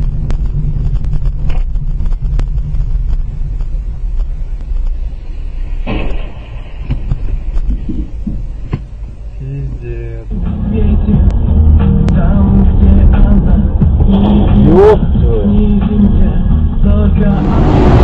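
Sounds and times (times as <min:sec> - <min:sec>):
low rumble of moving car: 0:00.0 - 0:18.0
burst of hissing noise: 0:05.1 - 0:08.7.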